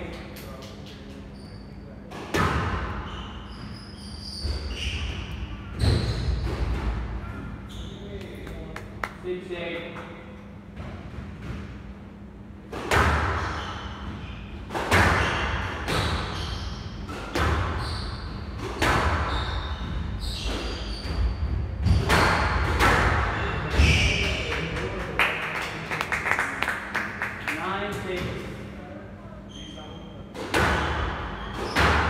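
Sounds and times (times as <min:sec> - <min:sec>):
squash ball hitting rackets and walls: 0:02.1 - 0:07.3, 0:12.7 - 0:24.5, 0:30.3 - 0:32.0.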